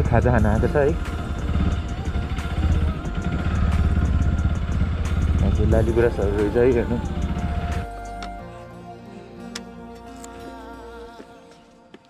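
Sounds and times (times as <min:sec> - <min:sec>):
motorcycle engine rumbling: 0:00.0 - 0:08.4.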